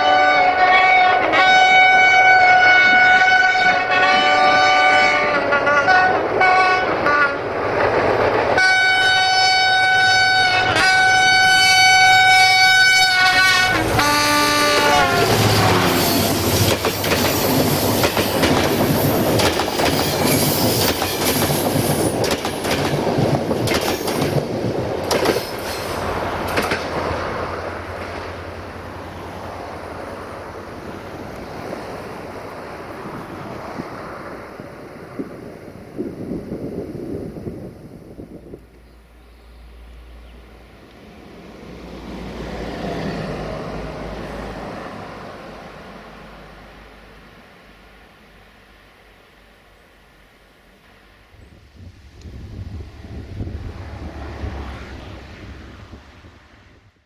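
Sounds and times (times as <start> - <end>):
diesel locomotive horn blasts: 0.0 - 7.5, 8.6 - 16.5
train wheels clattering over rails: 15.3 - 28.5.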